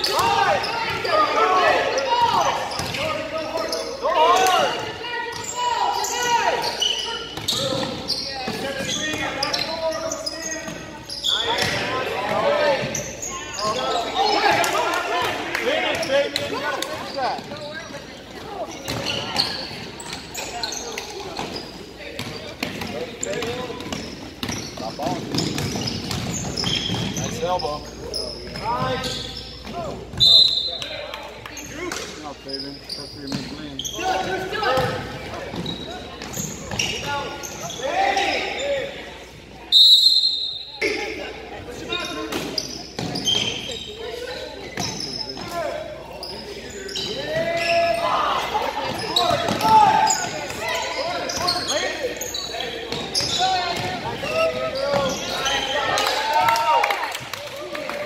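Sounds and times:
referee whistle blasts: 30.2 - 30.9, 39.7 - 40.8.

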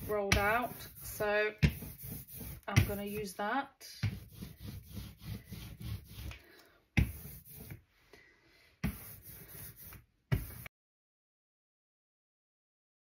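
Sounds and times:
ink roller rolling through sticky ink: 0.0 - 3.4, 4.0 - 7.8.

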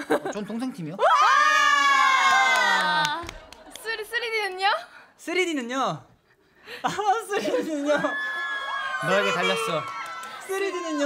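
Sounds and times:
young women shrieking cheer: 1.0 - 3.2, 7.9 - 11.0.

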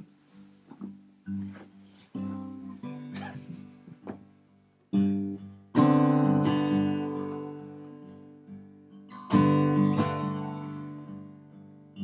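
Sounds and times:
acoustic guitar strummed chords: 0.4 - 12.0.

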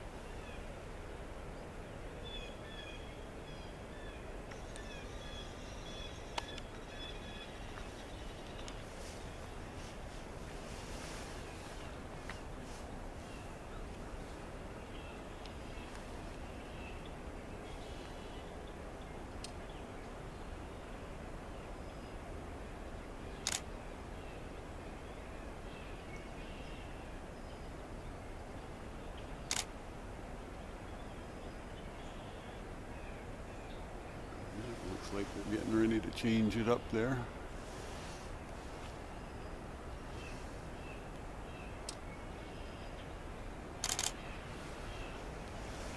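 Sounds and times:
distant bird calls: 0.0 - 45.9
outdoor background noise: 0.0 - 45.9
sharp clicks: 23.4 - 23.7, 29.5 - 29.7, 43.8 - 44.2.

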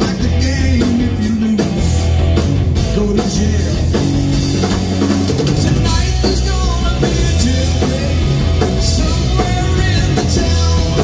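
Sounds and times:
bass guitar: 0.0 - 11.0
drum kit: 0.0 - 11.0
electric guitars: 0.0 - 11.0.

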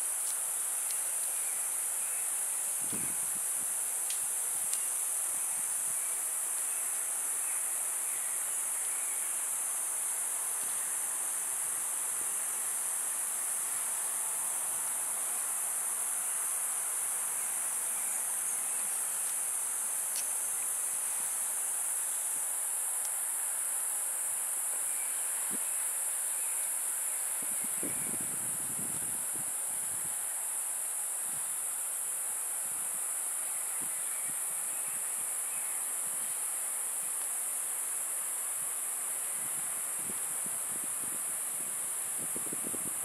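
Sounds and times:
high-pitched insect chorus: 0.0 - 43.0
faint ticks: 0.2 - 1.4, 4.0 - 4.9, 20.1 - 20.4, 23.0 - 23.2.

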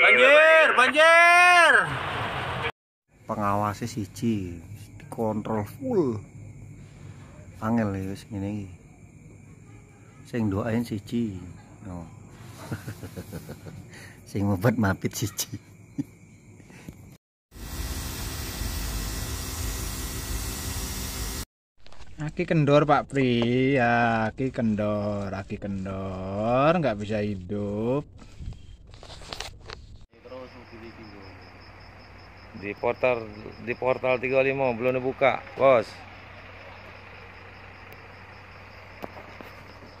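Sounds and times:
insects chirping: 3.1 - 19.3, 30.2 - 40.0
low engine drone: 17.6 - 21.4
diesel truck engine idling: 33.9 - 39.9.

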